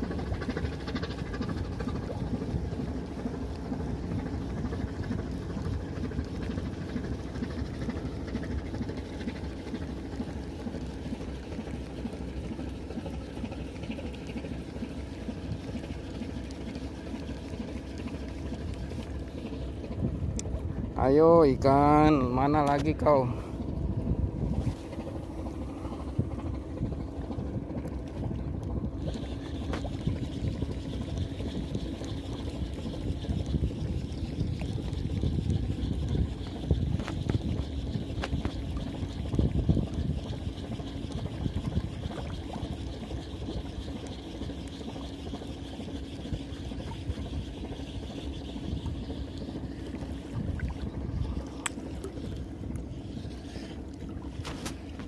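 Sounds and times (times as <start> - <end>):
steady low hum: 0.0 - 55.0.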